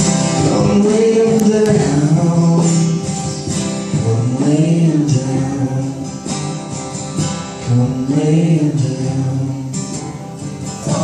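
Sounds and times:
people singing: 0.0 - 3.3, 3.9 - 6.5, 7.6 - 11.0
acoustic guitars strumming: 0.0 - 11.0.

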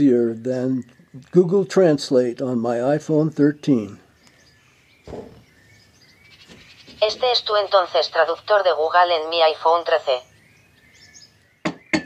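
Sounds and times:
sharp knocks: 5.0 - 5.5, 11.6 - 12.0
synthesized voice: 7.0 - 10.2.

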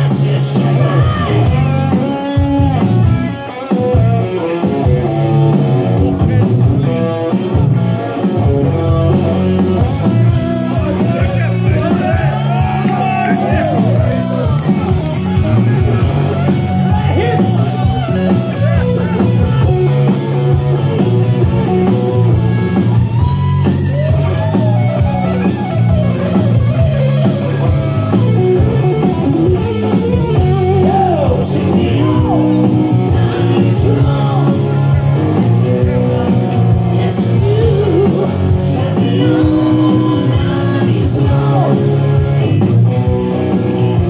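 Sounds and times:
bass guitar: 0.0 - 44.0
electric guitar: 0.0 - 44.0.

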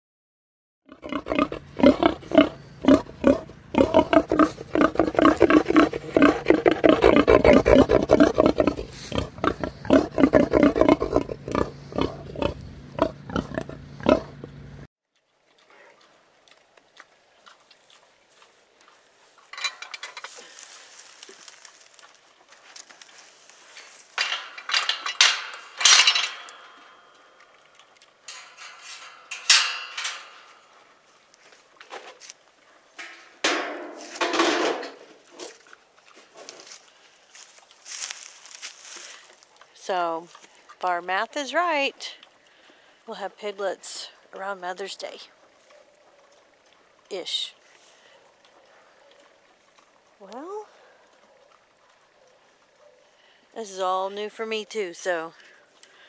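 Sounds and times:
pig grunting: 0.9 - 14.5
metal feed bowl clinking: 19.5 - 20.4, 24.2 - 30.7, 33.0 - 35.0.

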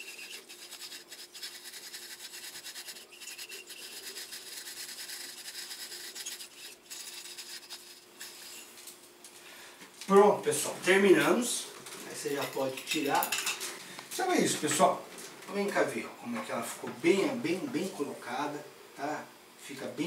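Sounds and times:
line rubbing onto spool: 0.0 - 8.8.

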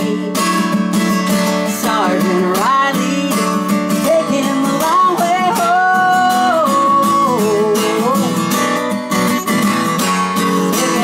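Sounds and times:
woman singing: 0.0 - 0.9, 1.5 - 9.6, 10.4 - 11.0
acoustic guitar strumming: 0.0 - 11.0.

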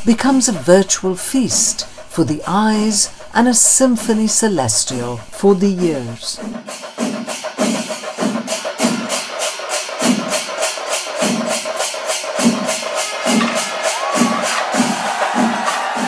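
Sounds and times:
temple percussion ensemble: 0.0 - 16.0
crowd: 11.2 - 16.0.

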